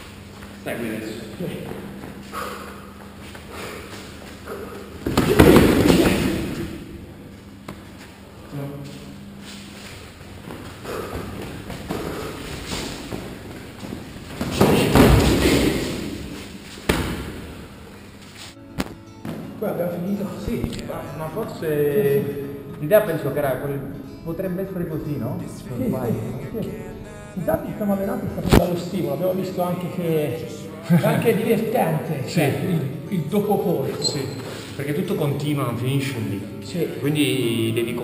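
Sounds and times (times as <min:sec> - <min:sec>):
glove strikes and thuds: 0:05.0 - 0:06.6, 0:16.9 - 0:17.5, 0:18.8 - 0:19.5
footfalls on mats: 0:05.0 - 0:06.7, 0:09.5 - 0:17.6.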